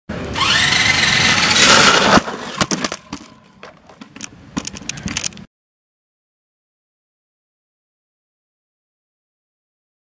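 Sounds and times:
rough tyre noise: 0.1 - 5.4
electric motor whine: 0.2 - 2.2
clicks and rattles: 2.6 - 5.5.

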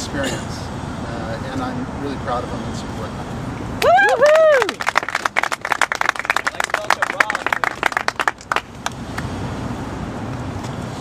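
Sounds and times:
crowd applauding: 3.8 - 9.0.

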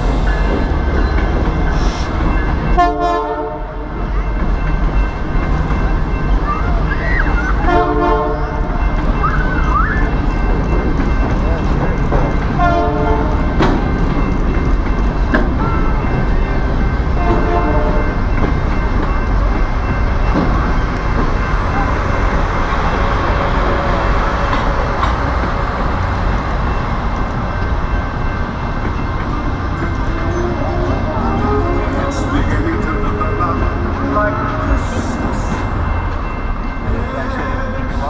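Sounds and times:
train wheels rumbling on rails: 0.0 - 38.0.

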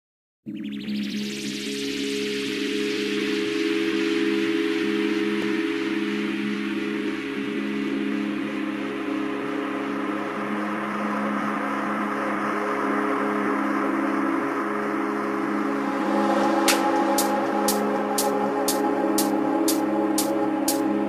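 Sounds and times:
sharp percussion beat: 16.6 - 20.8.

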